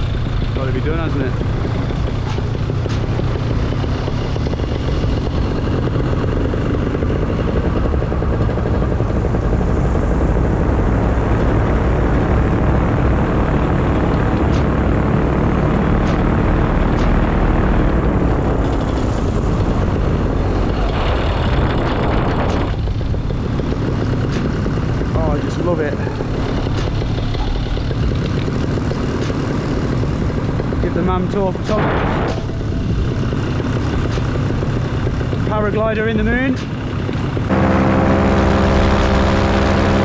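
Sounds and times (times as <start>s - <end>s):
paramotor engine and propeller droning: 0.0s - 40.0s.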